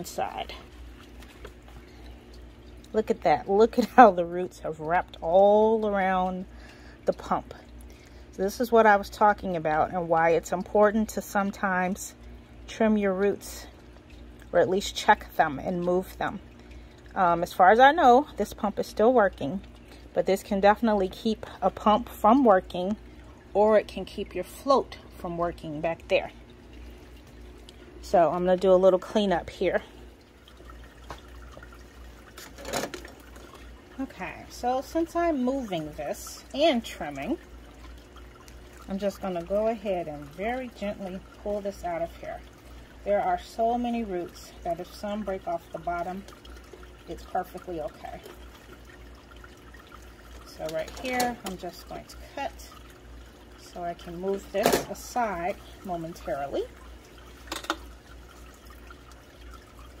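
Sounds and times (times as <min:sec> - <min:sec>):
low steady pump hum: 0:00.0 - 1:00.0
water trickling and dripping: 0:00.0 - 1:00.0.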